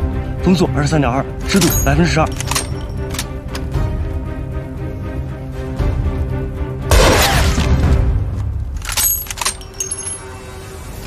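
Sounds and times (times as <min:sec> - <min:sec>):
dramatic film score: 0:00.0 - 0:11.0.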